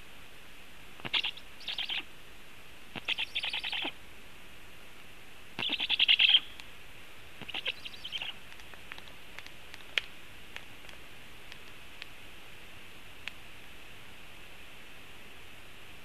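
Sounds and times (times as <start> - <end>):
young storks calling harshly: 1.0 - 2.0, 3.0 - 3.9, 5.6 - 6.4, 7.4 - 8.4.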